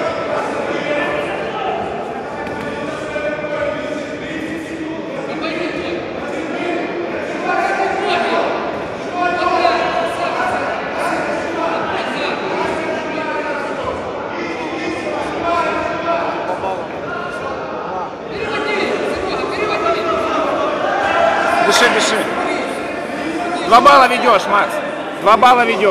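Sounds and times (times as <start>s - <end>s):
background chatter: 0.0s - 25.9s.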